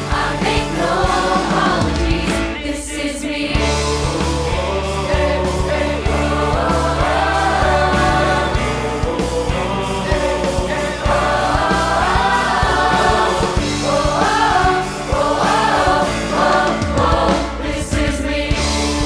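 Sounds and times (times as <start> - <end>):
bass and drum beat: 0.0 - 19.0
large choir singing: 0.0 - 19.0.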